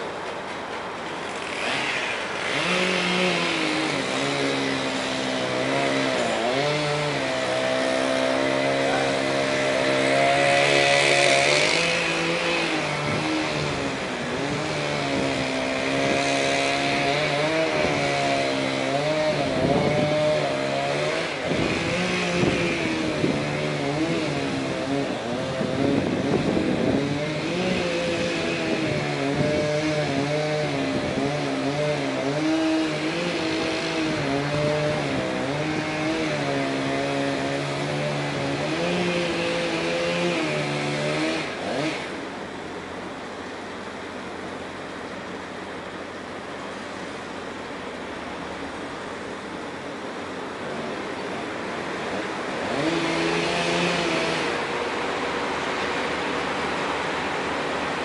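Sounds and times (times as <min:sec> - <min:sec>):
small engine running: 0:00.0 - 0:42.7, 0:50.3 - 0:58.0.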